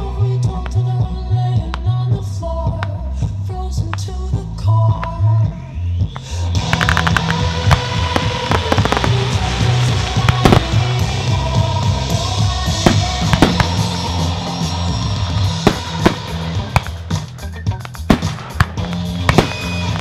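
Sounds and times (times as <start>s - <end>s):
music with bass beat: 0.0s - 20.0s
fireworks hissing: 6.2s - 20.0s
fireworks cracks and bangs: 6.6s - 20.0s.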